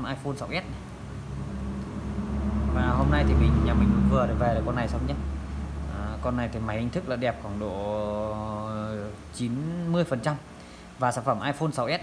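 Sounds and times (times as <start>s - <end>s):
motor vehicle engine rumble: 0.8s - 6.5s.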